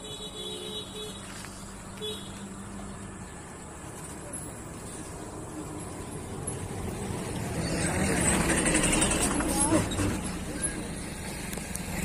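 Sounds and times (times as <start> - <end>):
vehicle passing: 1.3 - 12.0.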